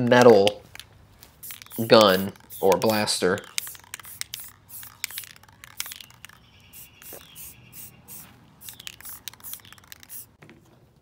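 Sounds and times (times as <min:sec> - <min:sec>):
spray can ball rattling: 0:00.2 - 0:10.4
spray hiss: 0:01.4 - 0:10.3.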